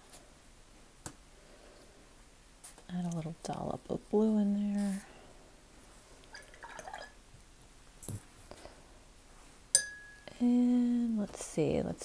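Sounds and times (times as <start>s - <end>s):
water dripping and sloshing: 6.2s - 7.2s.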